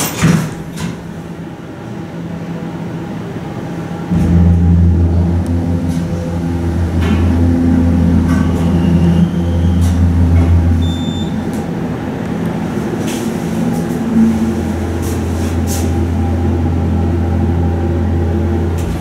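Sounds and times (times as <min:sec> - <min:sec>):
elevator pump motor humming: 0:02.2 - 0:19.0.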